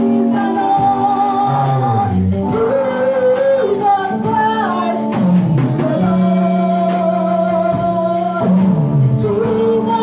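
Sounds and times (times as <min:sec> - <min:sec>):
bass line: 0:00.0 - 0:10.0
keyboard chords: 0:00.0 - 0:10.0
voices singing gospel: 0:00.0 - 0:10.0.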